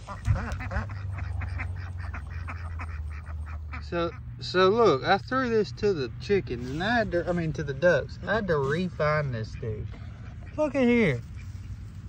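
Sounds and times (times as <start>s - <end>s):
ducks quacking: 0.0s - 12.0s.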